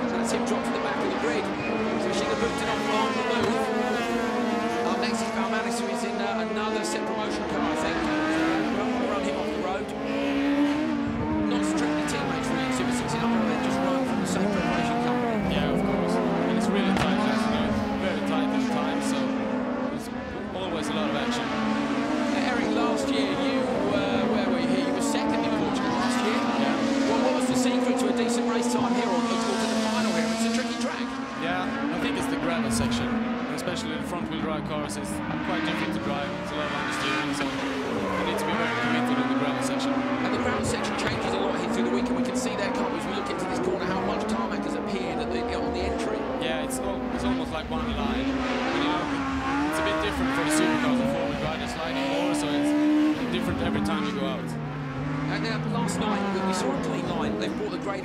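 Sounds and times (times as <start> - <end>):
racing car engines revving: 0.0 - 58.0.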